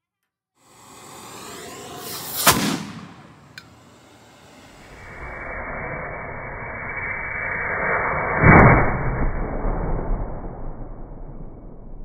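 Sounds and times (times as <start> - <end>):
gunpowder fuse hissing: 0.6 - 5.4.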